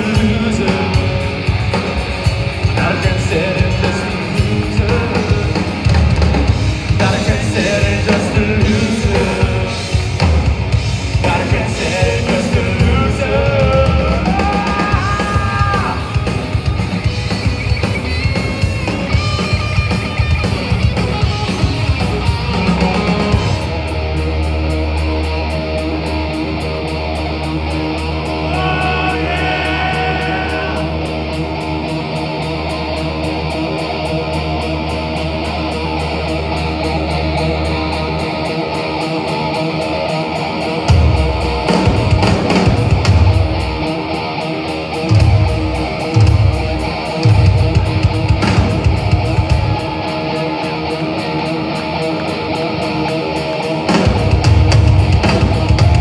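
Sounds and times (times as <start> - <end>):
drum hits and fills: 0.0 - 23.9, 40.8 - 44.0, 45.0 - 50.1, 53.8 - 56.0
electric guitars ringing: 0.0 - 56.0.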